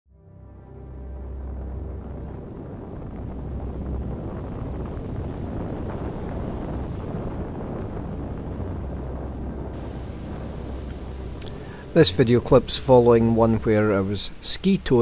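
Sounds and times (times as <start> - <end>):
low rushing roar of wind: 0.3 - 15.0.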